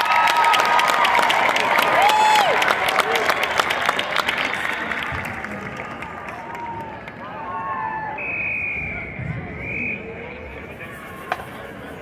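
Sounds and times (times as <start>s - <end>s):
crowd whoops and shouts: 0.0s - 3.7s, 5.5s - 9.7s
crowd applauding: 0.0s - 7.8s.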